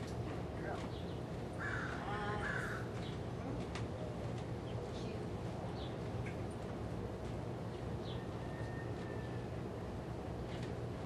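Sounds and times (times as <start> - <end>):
harsh bird caw: 1.6 - 3.0.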